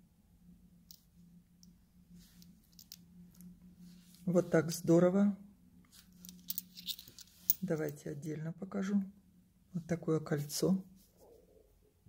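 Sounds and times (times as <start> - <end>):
faint steady hum: 0.0 - 12.0
jewellery clicking: 6.2 - 7.9.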